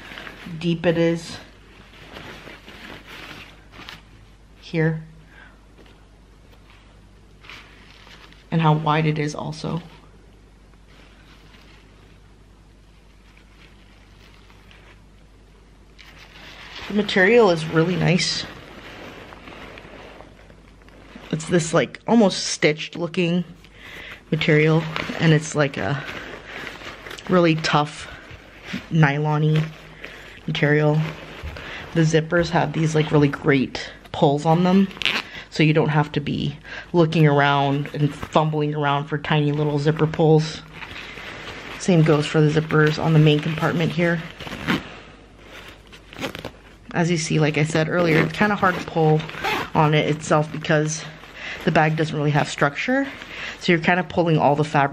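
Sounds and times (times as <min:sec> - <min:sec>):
nylon fabric rustling: 0:00.0 - 0:54.9
zipper opening: 0:42.0 - 0:46.6, 0:48.0 - 0:49.9.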